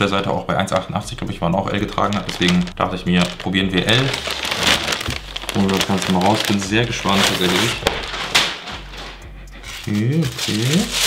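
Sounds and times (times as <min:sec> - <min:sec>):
plastic bag rustling: 0:01.9 - 0:11.0.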